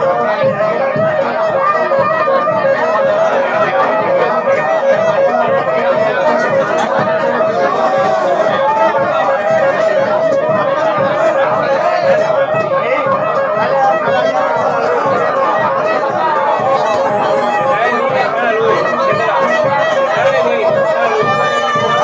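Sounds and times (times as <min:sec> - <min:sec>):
people chattering: 0:00.0 - 0:22.0
saxophone playing a tune: 0:00.0 - 0:22.0
small street band: 0:00.0 - 0:22.0.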